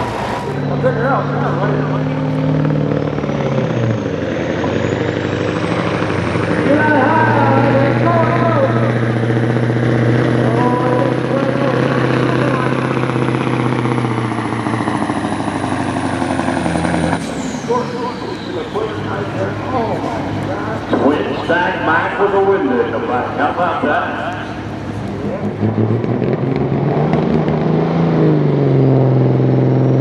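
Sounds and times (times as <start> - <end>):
diesel truck engine under load: 0.0 - 30.0
turbocharger whistle: 15.4 - 23.1.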